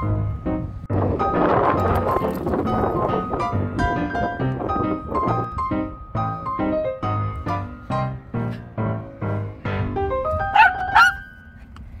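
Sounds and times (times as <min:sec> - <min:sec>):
background piano music: 0:00.0 - 0:12.0
small dog barking: 0:10.5 - 0:11.2.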